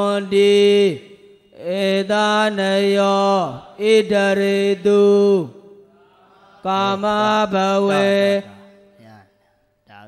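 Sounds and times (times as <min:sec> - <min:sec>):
monk chanting on held pitch: 0:06.6 - 0:09.2.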